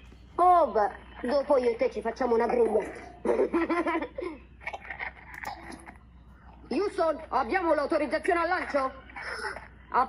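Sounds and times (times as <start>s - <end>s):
faint voices from laptop speakers: 0.0s - 10.0s.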